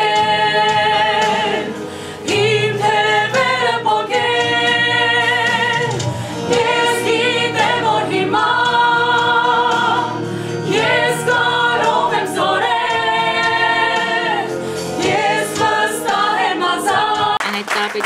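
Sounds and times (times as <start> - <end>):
women singing together: 0.0 - 18.0.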